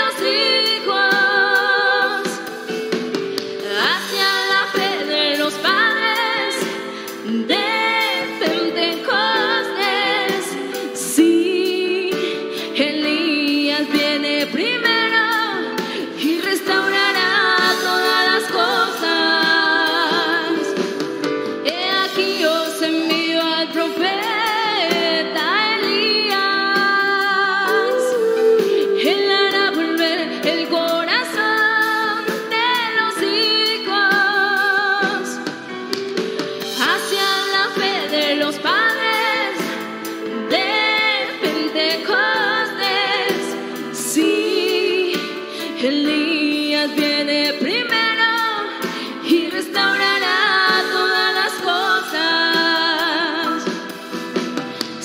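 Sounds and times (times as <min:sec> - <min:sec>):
instrumental accompaniment: 0:00.0 - 0:55.0
woman singing slow song: 0:03.6 - 0:20.8, 0:21.6 - 0:35.4, 0:36.8 - 0:53.8.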